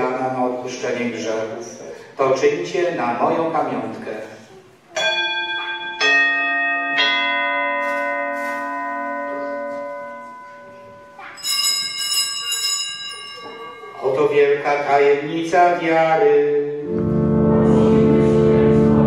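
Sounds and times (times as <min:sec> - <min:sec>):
higher bright ringing: 0:04.9 - 0:15.2
altar bells ringing: 0:05.0 - 0:15.2.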